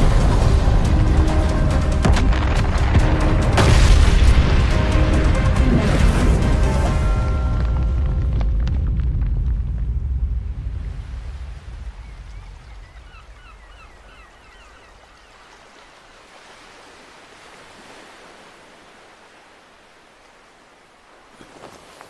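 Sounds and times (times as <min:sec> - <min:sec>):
deep rumble: 0:00.0 - 0:13.3.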